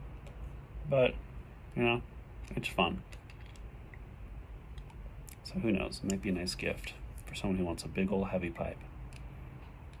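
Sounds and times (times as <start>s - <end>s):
low room noise: 0.0s - 10.0s.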